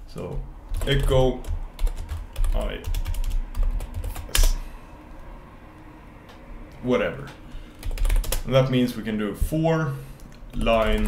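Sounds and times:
computer keyboard keystrokes: 0.7s - 4.6s, 7.2s - 8.5s, 10.2s - 11.0s.

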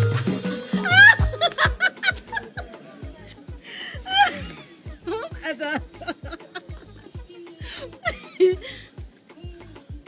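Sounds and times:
high-pitched laugh: 0.0s - 2.8s, 4.0s - 8.9s
music with drum beat and bass: 0.0s - 10.0s.

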